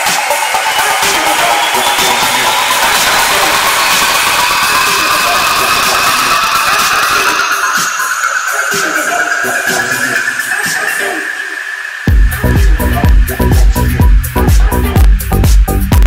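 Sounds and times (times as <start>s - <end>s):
rising noise sweep: 0.0s - 14.9s
electronic dance music: 0.0s - 16.0s.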